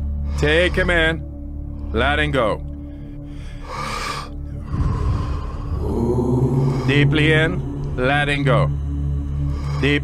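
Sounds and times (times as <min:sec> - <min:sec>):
background music: 0:00.0 - 0:10.0
deep breath through mouth: 0:02.8 - 0:07.1.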